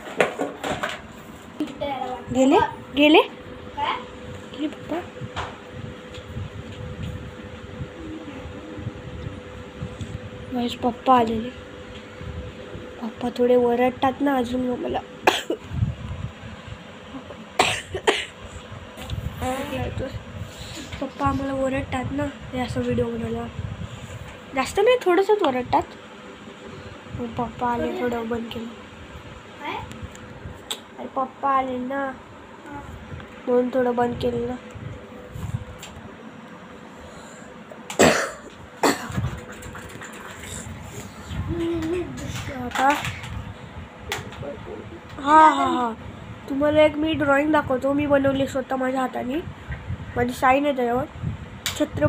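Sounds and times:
person coughing: 15.2s - 15.6s, 17.6s - 18.4s, 37.9s - 39.2s.

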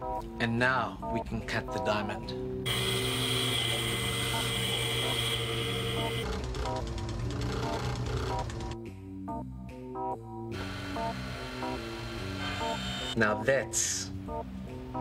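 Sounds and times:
saw blade whining: 2.7s - 6.2s, 10.6s - 13.2s.

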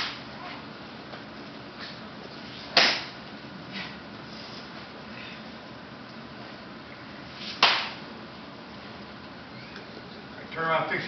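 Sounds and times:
sharp hand slap: 2.8s - 3.1s, 7.5s - 8.0s.

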